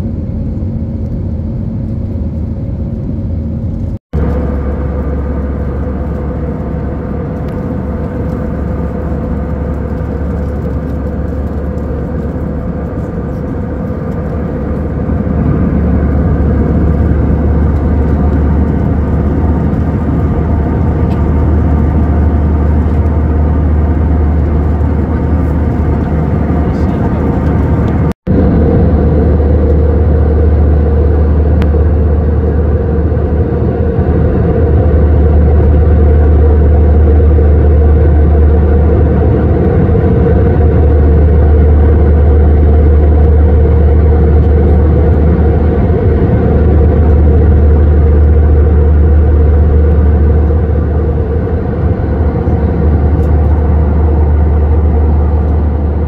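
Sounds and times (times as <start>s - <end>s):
jet airliner cabin roar: 0.0s - 56.0s.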